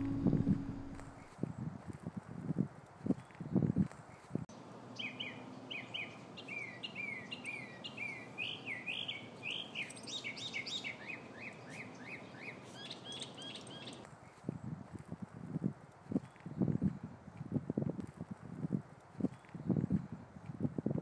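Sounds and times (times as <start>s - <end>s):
songbird chirping: 0.0s - 1.4s, 4.2s - 14.4s.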